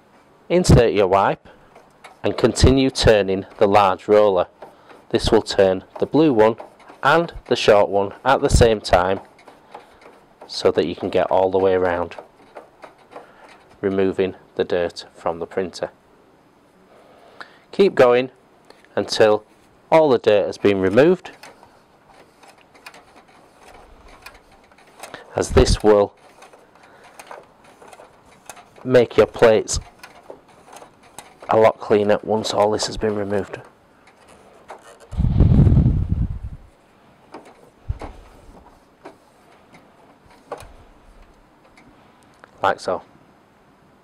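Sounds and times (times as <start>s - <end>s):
printer rollers clicking: 1.6s - 14.4s, 19.0s - 35.4s, 36.7s - 42.0s.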